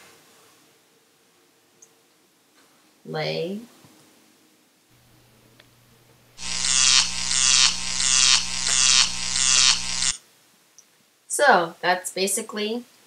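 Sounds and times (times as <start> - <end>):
pulsing electrical crackling buzz: 6.4 - 10.2
steady low hum: 6.4 - 10.2.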